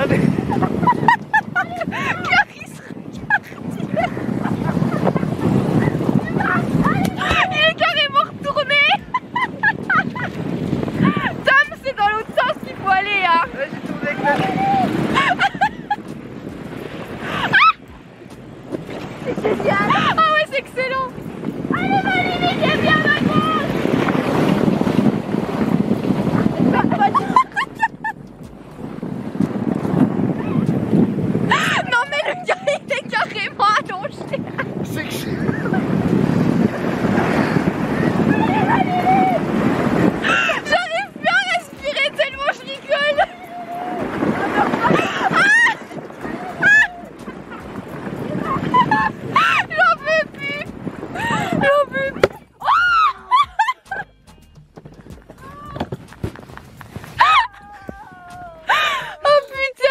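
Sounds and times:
sleds sliding over packed snow: 0.0s - 54.0s, 54.7s - 59.9s
woman laughing hard: 0.2s - 11.6s, 14.4s - 16.1s, 17.2s - 17.9s, 26.6s - 28.2s, 31.4s - 36.1s, 40.2s - 54.1s, 57.2s - 59.9s.

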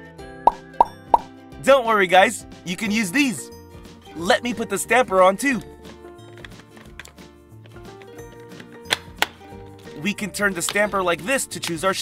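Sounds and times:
light background music: 0.0s - 12.0s
sharp plastic clicks: 6.4s - 9.4s.

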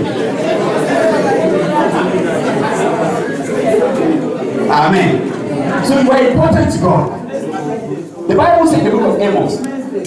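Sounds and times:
many voices chattering: 0.0s - 10.0s.

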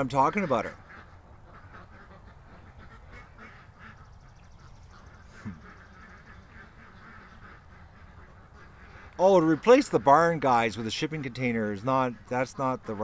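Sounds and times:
ducks quacking softly: 0.0s - 13.0s.

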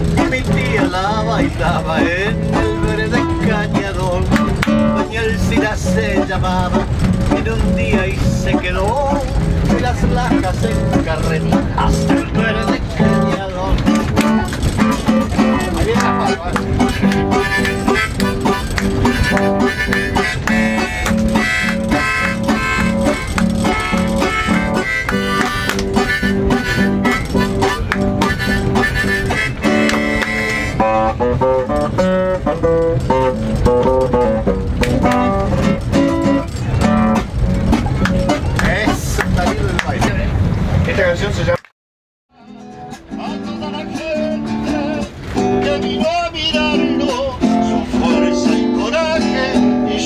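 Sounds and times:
acoustic guitar: 0.0s - 41.5s, 42.3s - 50.0s
harmonica: 14.2s - 31.7s.

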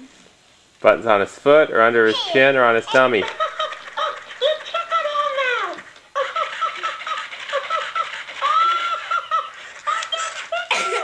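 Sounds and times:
toy doll giggling through speaker: 2.9s - 11.0s.

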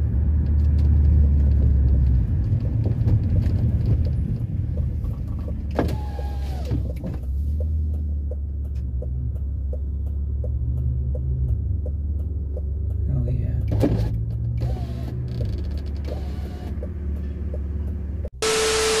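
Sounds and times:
static hiss: 18.4s - 19.0s
steady beep: 18.4s - 19.0s.

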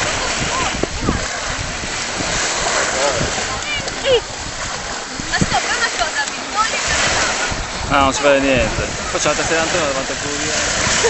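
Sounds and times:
rush of waves: 0.0s - 11.0s
sea water splashing and lapping: 0.0s - 11.0s
voices: 0.0s - 11.0s.

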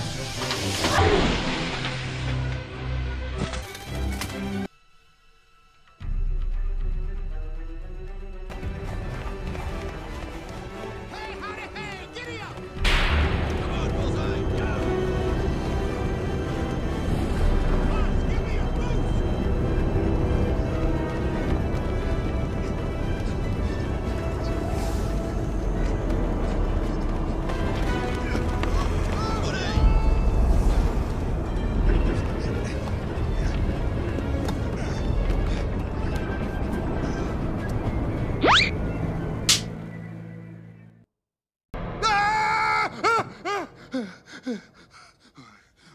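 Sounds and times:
dense film score music: 0.0s - 41.0s
film sound effects: 0.0s - 41.0s.

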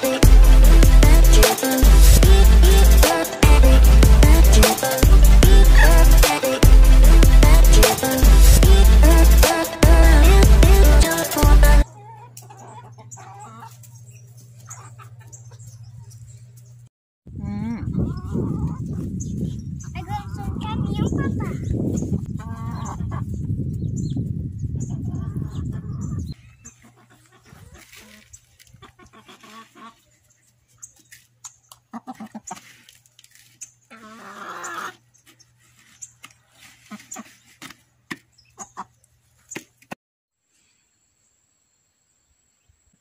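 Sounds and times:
wind buffeting microphone: 17.3s - 26.4s.

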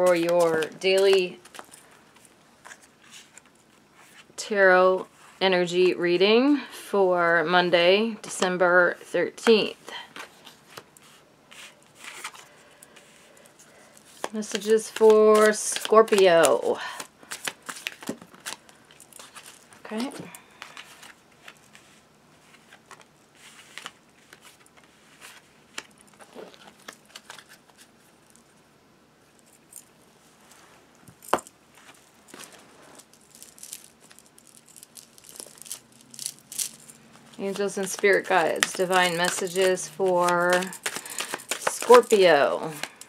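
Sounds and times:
cards being shuffled: 0.0s - 4.3s, 9.4s - 28.0s, 31.1s - 43.0s.

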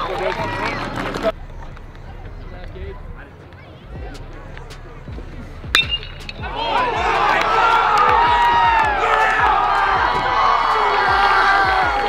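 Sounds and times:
crowd cheering and yelling: 0.0s - 2.2s, 6.4s - 12.0s
metal bat hitting ball: 5.7s - 6.5s.

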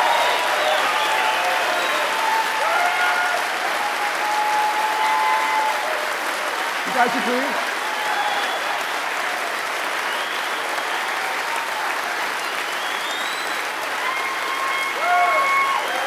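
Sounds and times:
audience applauding: 0.0s - 16.0s.

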